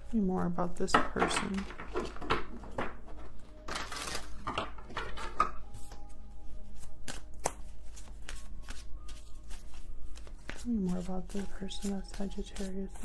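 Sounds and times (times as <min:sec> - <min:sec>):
cards being shuffled: 0:03.7 - 0:13.0.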